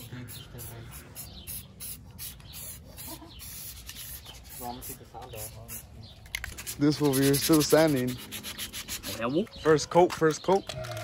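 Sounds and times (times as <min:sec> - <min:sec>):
spray paint can hissing: 0:00.0 - 0:09.2.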